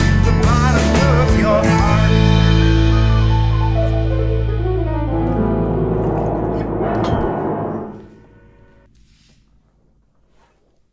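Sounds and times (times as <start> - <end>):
band playing closing chord: 0.7 - 8.8
drum hit: 6.0 - 8.2.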